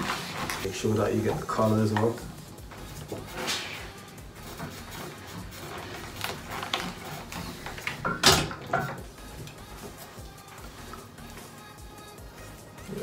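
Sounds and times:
fabric rustling: 0:00.0 - 0:01.9, 0:02.7 - 0:08.2
iron moving on ironing board: 0:00.0 - 0:11.5
background music: 0:00.0 - 0:13.0.

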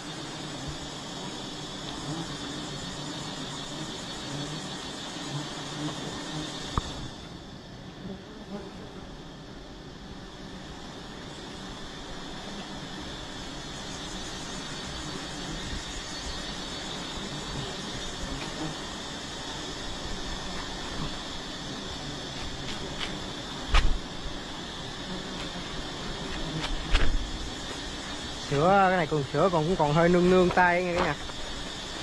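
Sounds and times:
bees buzzing: 0:00.0 - 0:32.0.

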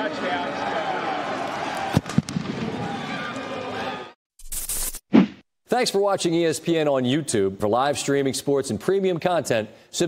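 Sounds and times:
crowd shouting and cheering: 0:00.0 - 0:04.2.

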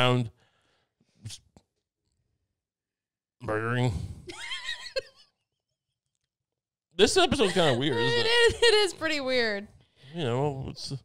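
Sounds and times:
woman laughing: 0:04.3 - 0:05.2, 0:07.4 - 0:09.1.

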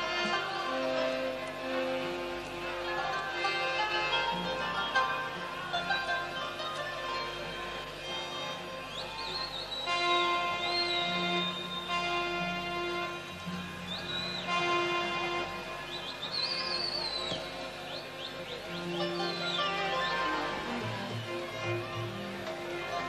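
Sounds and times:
orchestra playing long held notes: 0:00.0 - 0:23.0.

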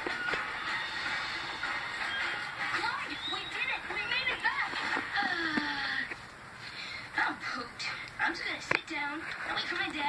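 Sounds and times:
cartoon dialogue from television: 0:02.5 - 0:06.2, 0:07.1 - 0:10.0.

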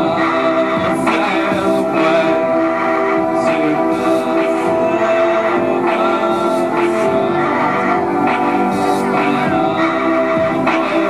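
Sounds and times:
held synthesizer notes: 0:00.0 - 0:11.0
man singing into microphone: 0:00.0 - 0:11.0.

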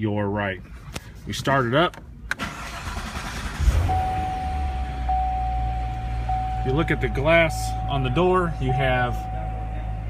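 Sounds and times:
car engine starting and idling: 0:01.8 - 0:10.0.

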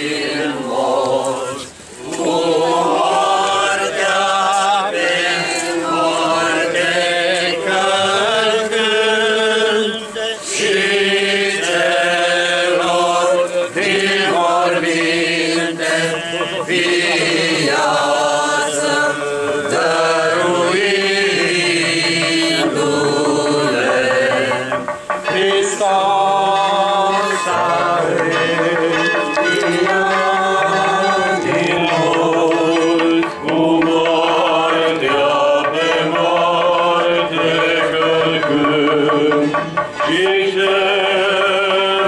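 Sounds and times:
group of voices chanting: 0:00.0 - 0:42.0.

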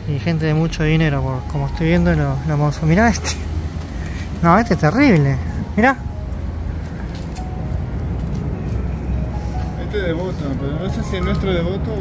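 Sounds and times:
faint distant music: 0:00.0 - 0:12.0
low city rumble: 0:00.0 - 0:12.0.

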